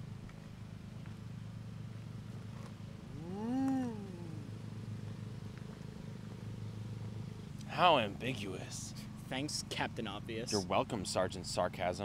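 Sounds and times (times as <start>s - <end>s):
steady low hum: 0.0s - 12.0s
man humming: 3.1s - 4.6s.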